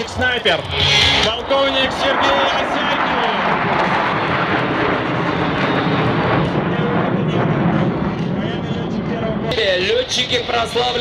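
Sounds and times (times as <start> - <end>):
jet engines flying overhead: 0.0 - 11.0.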